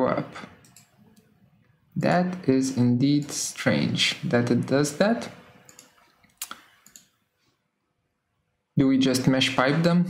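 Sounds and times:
computer mouse clicking: 0.6 - 1.3, 5.6 - 7.2.

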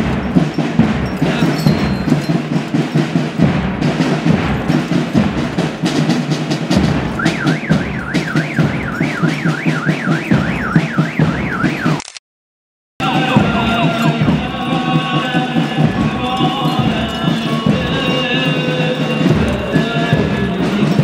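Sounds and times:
drums beating loudly: 0.0 - 12.0, 13.0 - 21.0
warbling electronic alarm tone: 7.2 - 11.9.

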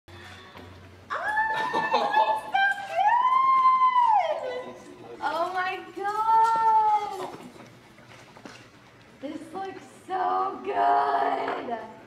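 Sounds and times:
woman's high-pitched ooh: 1.1 - 2.1.

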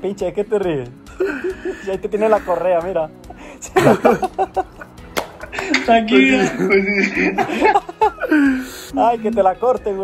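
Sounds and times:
men laughing: 1.1 - 2.6, 3.3 - 8.8.

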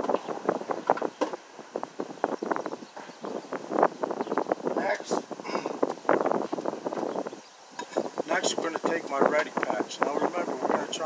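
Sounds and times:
wind on microphone: 0.0 - 11.0
man talking indistinctly: 4.8 - 5.3, 8.2 - 11.0.

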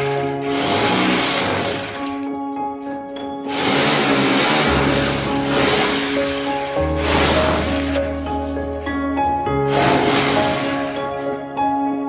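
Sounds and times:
background music: 0.0 - 12.0
rotary hammer chiselling brick: 3.5 - 8.0.

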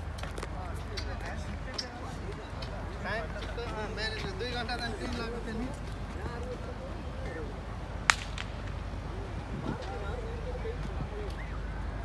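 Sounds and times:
sharp loud crack: 8.0 - 9.0.

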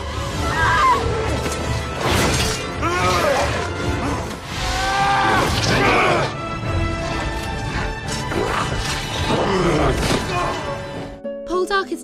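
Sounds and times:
orchestral battle music: 0.0 - 11.2.

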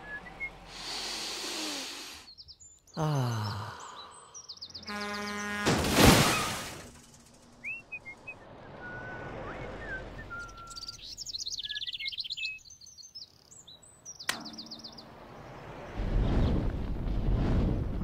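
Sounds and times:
birds chirping and whistling: 0.0 - 5.6, 7.6 - 15.1
vehicle horn blast: 4.8 - 6.0
loud crash: 5.6 - 7.3.

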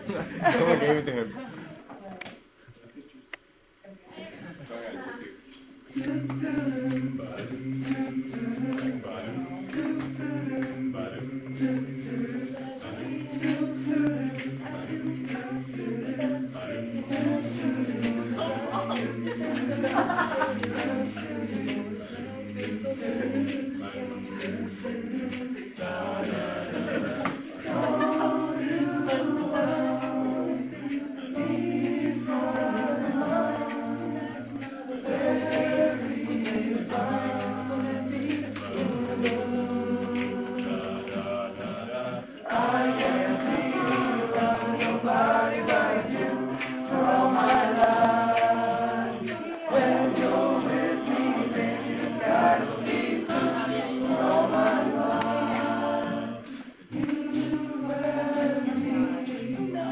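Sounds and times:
choir singing in harmony: 0.0 - 1.2, 5.8 - 59.9.

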